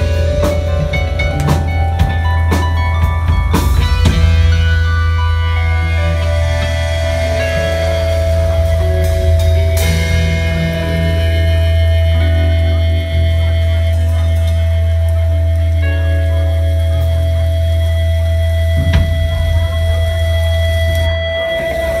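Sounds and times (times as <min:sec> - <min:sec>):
keyboard tone ringing: 0:00.0 - 0:22.0
rock band sustained chord: 0:00.0 - 0:22.0.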